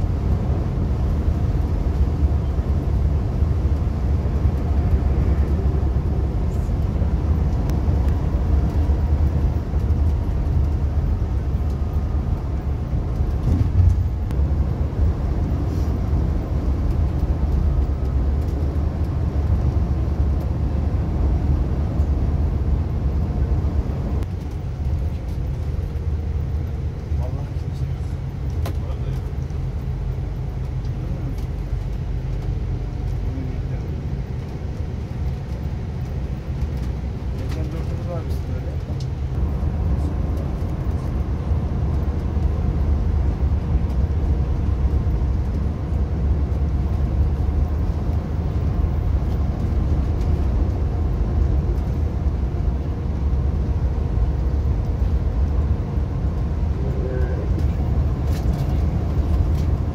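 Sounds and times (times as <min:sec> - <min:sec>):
coach diesel engine drone: 0:00.0 - 0:59.9
road rumble: 0:00.0 - 0:59.9.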